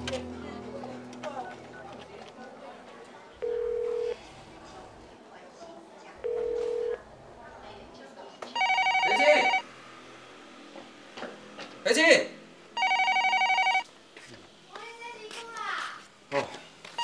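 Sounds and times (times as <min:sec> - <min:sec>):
telephone ringing: 0:03.4 - 0:04.9, 0:06.2 - 0:07.2, 0:08.6 - 0:09.6, 0:12.8 - 0:13.8.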